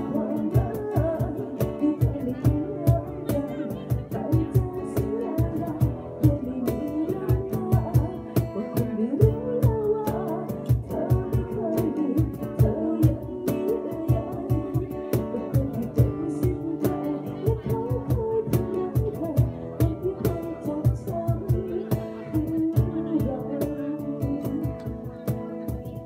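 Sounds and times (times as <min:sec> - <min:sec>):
acoustic guitar: 0:00.0 - 0:26.0
person singing: 0:00.0 - 0:26.0.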